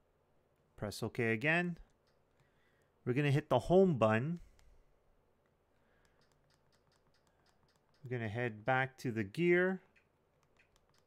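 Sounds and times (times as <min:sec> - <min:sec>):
faint irregular clicks: 0:01.8 - 0:03.0, 0:04.3 - 0:08.3, 0:09.8 - 0:11.0.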